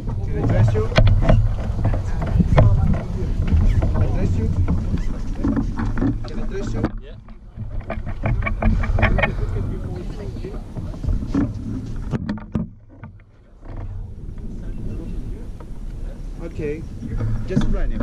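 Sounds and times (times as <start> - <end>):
people talking quietly: 0.0 - 12.2, 13.0 - 18.0
wind rumbling on microphone: 0.0 - 18.0.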